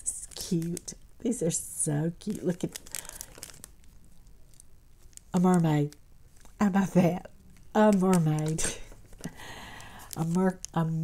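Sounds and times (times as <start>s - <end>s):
packet rustling and crinkling: 0.0s - 6.6s, 7.5s - 11.0s
small clicks: 0.3s - 1.0s.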